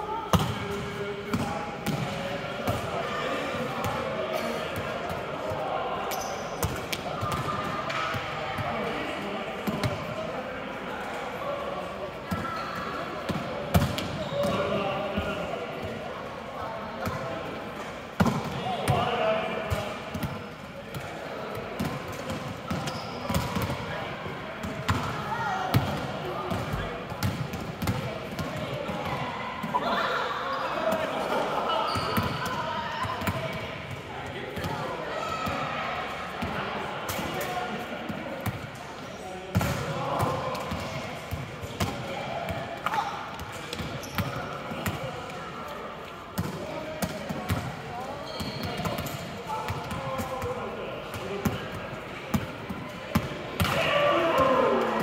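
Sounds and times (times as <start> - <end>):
volleyballs hit and bouncing: 0.3 - 3.0, 3.6 - 10.3, 12.2 - 16.1, 17.0 - 29.8, 39.4 - 55.0.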